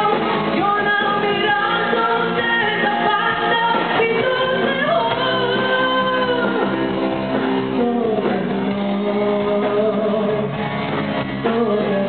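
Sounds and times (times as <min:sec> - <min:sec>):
woman singing lead vocal: 0:00.0 - 0:10.6, 0:11.3 - 0:12.0
drums: 0:00.0 - 0:12.0
electric guitar: 0:00.0 - 0:12.0.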